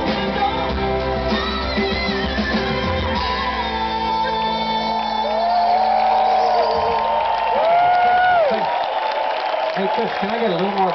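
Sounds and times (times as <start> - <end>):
crowd cheering and shouting: 0.0 - 10.9.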